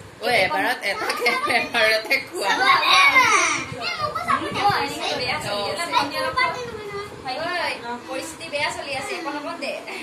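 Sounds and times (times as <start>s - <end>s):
children talking and calling out: 0.8s - 7.8s.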